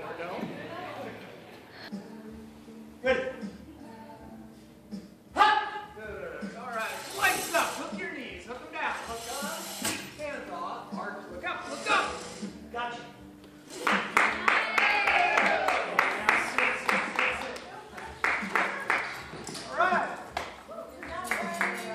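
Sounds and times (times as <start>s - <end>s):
voices in a large hall: 0.0s - 21.9s.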